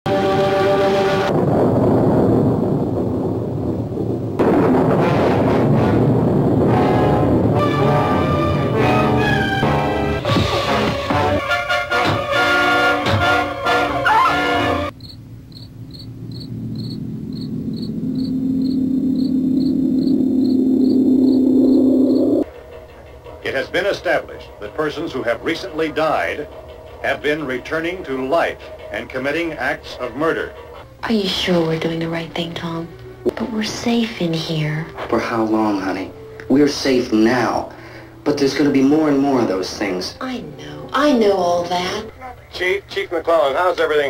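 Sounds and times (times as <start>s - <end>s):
horn-like chord: 0.1s - 1.3s, 5.0s - 14.9s
brass music sting: 0.1s - 1.4s, 4.4s - 14.9s
low dense rumble: 1.3s - 9.6s, 14.9s - 43.9s
low ominous drone: 14.8s - 42.8s
crickets chirping: 14.9s - 23.3s, 32.9s - 44.0s.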